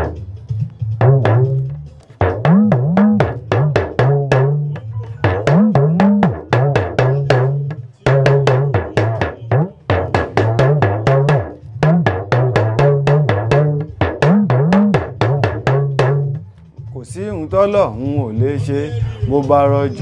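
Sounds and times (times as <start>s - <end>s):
talking drum struck with stick: 0.0s - 16.5s.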